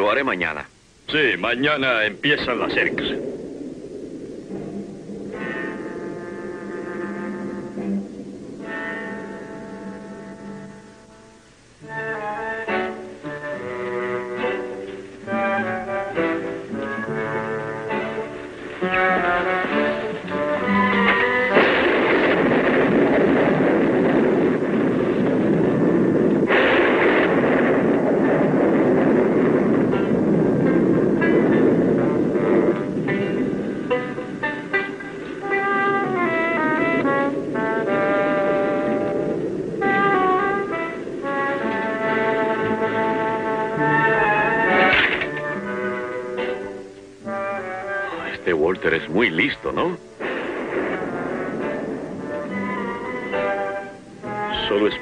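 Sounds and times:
thunder clap: 0.0s - 55.0s
thunder rumbling: 0.0s - 55.0s
orchestral score with brass: 4.8s - 55.0s.

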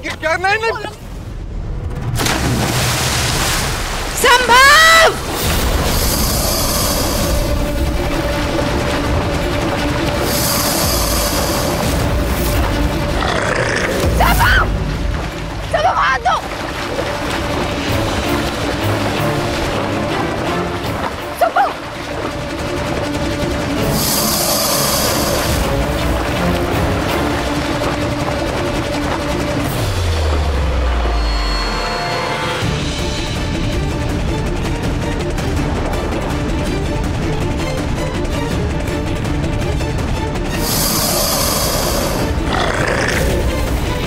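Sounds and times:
dramatic background score: 0.0s - 44.0s
water splashing and churning: 2.0s - 31.3s, 32.6s - 44.0s
rushing noise effect: 5.2s - 14.0s
faint sustained musical tone: 30.6s - 32.6s.

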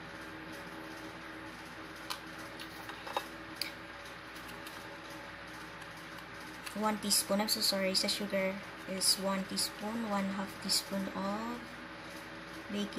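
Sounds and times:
steady low hum: 0.0s - 12.9s.

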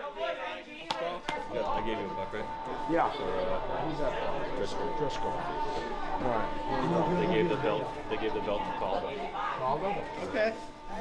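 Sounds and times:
young men talking and laughing: 0.0s - 10.6s
sharp hand claps: 0.9s - 1.5s.

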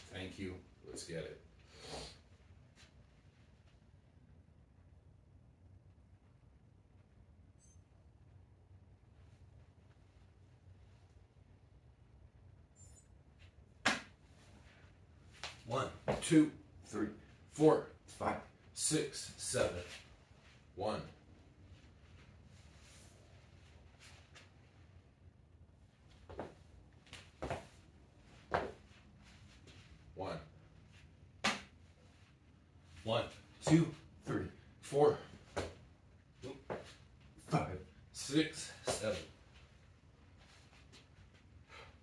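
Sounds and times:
short high beep: 7.5s - 7.9s, 12.8s - 13.2s
sharp smack: 13.8s - 14.1s, 31.4s - 31.7s
feet landing on rubber mat: 27.4s - 27.7s.

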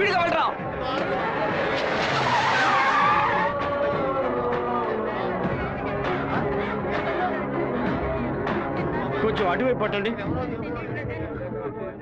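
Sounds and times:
car tyres skidding: 1.0s - 4.2s.

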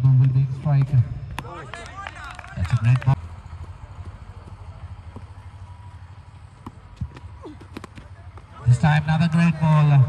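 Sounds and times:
low outdoor background hum: 0.0s - 10.0s.

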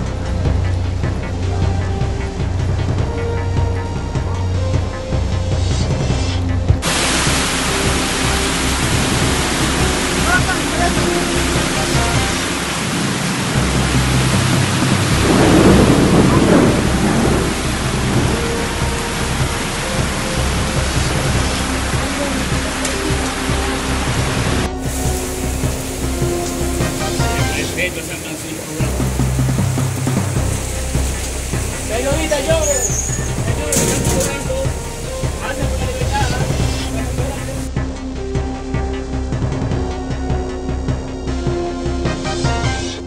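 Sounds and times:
heavy rain pouring: 0.0s - 43.0s.

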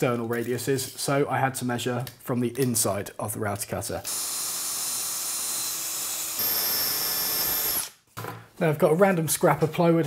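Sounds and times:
cordless drill whining: 4.0s - 8.0s.

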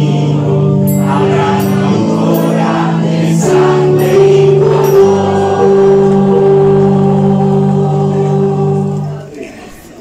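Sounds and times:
choir singing: 0.0s - 9.9s.

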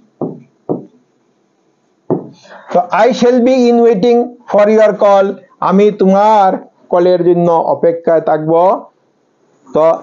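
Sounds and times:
pen tapping on display board: 0.2s - 1.0s, 2.1s - 2.4s.

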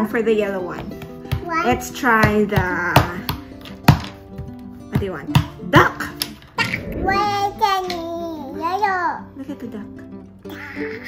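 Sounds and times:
child's sing-song voice: 7.0s - 9.0s.

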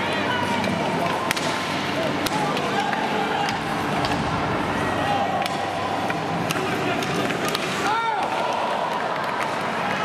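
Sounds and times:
arena crowd noise: 0.0s - 10.0s
hockey stick striking puck: 1.0s - 4.4s, 5.4s - 8.4s.

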